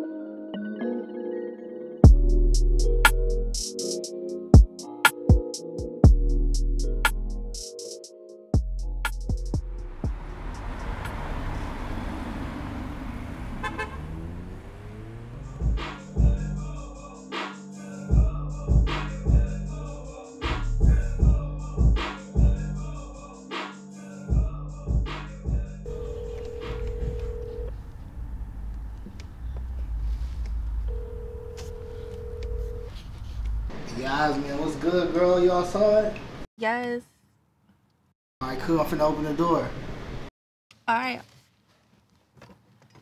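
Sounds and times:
city traffic noise: 9.6s - 16.3s, 25.9s - 36.4s, 38.5s - 40.3s
car horn toot: 13.4s - 14.6s
telephone ringback tone: 25.9s - 27.8s, 30.9s - 32.9s.

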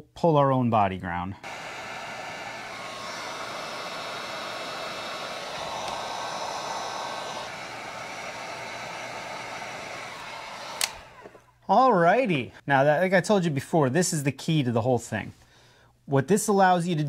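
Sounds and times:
heat gun blowing: 1.4s - 11.5s
heat gun switch click: 5.6s - 6.2s, 10.2s - 11.4s.

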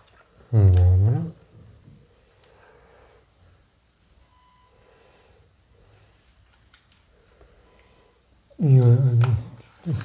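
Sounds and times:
faint clicks: 6.4s - 7.9s.

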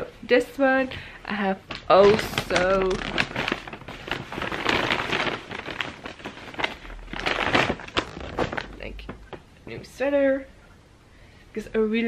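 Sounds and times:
paper bag rustling and crinkling: 1.7s - 9.8s.

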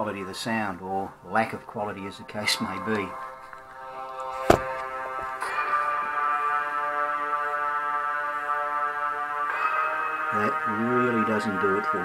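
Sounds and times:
music from laptop speakers: 4.9s - 12.0s.

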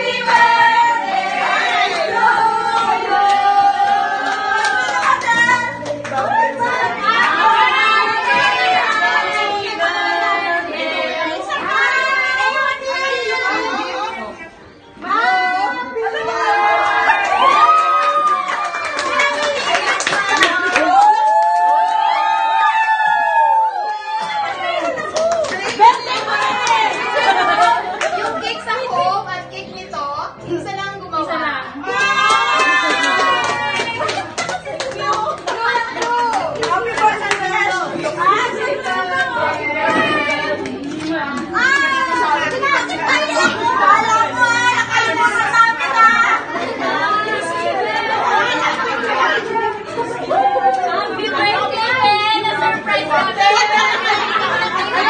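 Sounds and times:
women chattering: 33.8s - 55.0s.

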